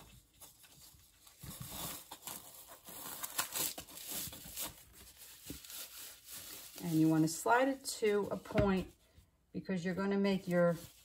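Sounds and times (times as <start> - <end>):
fabric rustling against foam: 0.0 - 9.0, 10.0 - 11.0.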